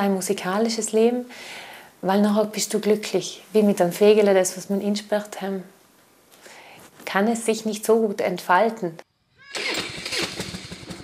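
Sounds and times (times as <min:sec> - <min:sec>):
motorcycle engine starting and running: 0:09.4 - 0:11.0.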